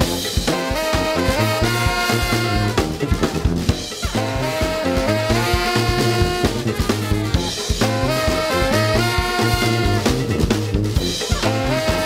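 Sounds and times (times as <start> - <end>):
brass band playing: 0.0 - 12.0
snare and bass drum: 0.0 - 12.0
sousaphone bass line: 0.0 - 12.0.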